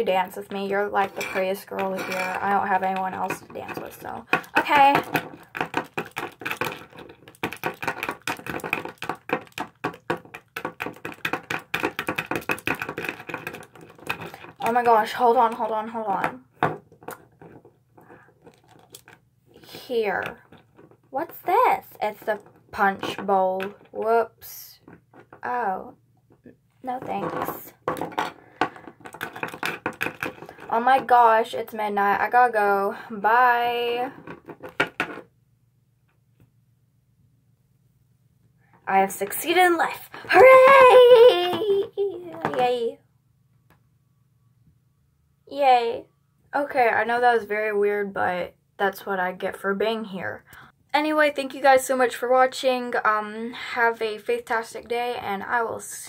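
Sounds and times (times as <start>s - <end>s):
plastic figures tapping on table: 1.0s - 14.9s, 27.0s - 30.7s.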